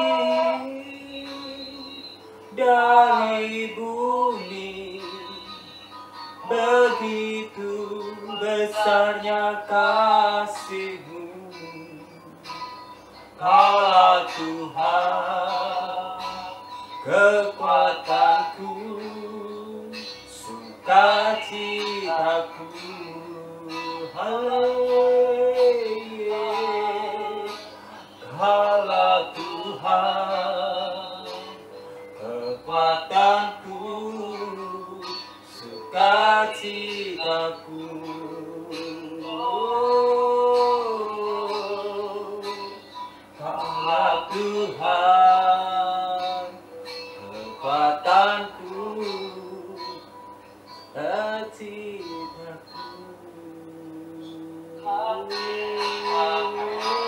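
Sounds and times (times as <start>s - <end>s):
man singing: 0.0s - 5.5s, 6.4s - 12.5s, 13.4s - 50.1s, 50.9s - 57.0s
soft instrumental backing: 0.0s - 57.0s.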